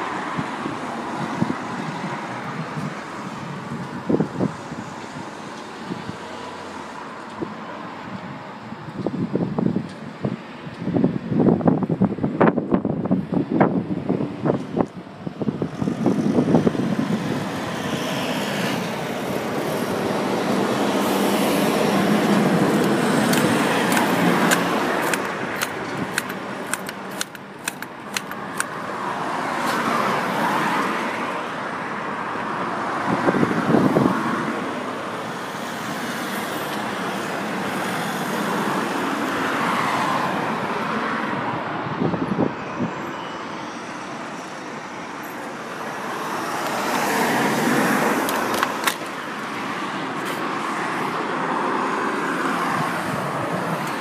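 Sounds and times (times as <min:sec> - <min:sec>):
road traffic passing: 0:00.0 - 0:54.0
sharp clicks: 0:22.7 - 0:28.8.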